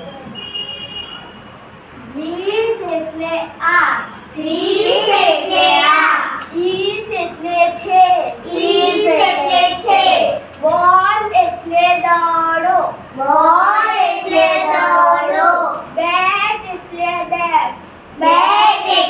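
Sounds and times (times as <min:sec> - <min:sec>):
children chanting in unison: 0:04.4 - 0:06.4, 0:08.4 - 0:10.4, 0:13.2 - 0:15.8, 0:18.2 - 0:19.0.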